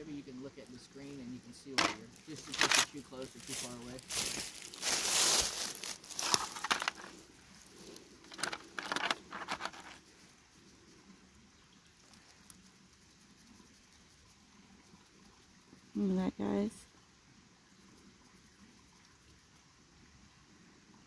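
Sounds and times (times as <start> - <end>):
rustling and crinkling handling noise: 1.7 - 10.0.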